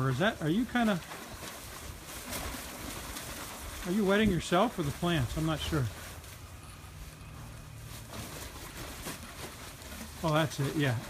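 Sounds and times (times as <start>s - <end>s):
light rustling: 0.0s - 11.0s.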